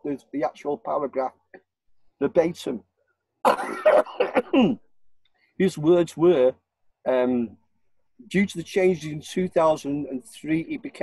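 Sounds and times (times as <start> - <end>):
man clearing throat: 3.5 - 4.9.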